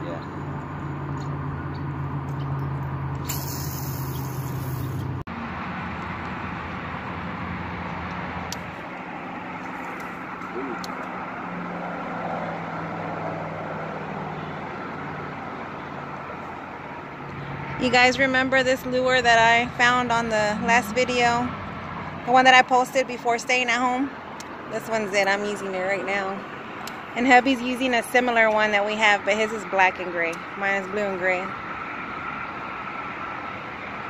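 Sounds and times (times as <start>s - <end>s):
fishing line running off reel: 3.1s - 5.2s.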